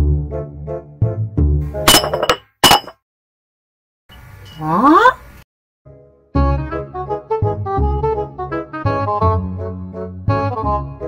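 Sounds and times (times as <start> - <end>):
background music: 0.0 - 1.9, 5.9 - 11.0
glass breaking crash: 1.9 - 3.0.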